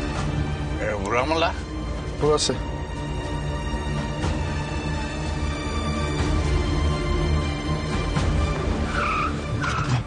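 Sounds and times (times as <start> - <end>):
background music: 0.0 - 10.0
tyre or brake squeals: 8.9 - 10.0.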